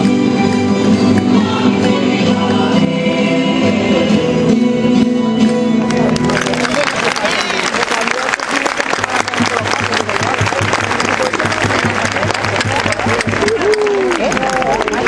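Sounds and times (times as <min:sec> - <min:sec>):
audience voices: 0:00.0 - 0:15.0
folk dance music: 0:00.0 - 0:15.0
audience applause: 0:05.9 - 0:15.0.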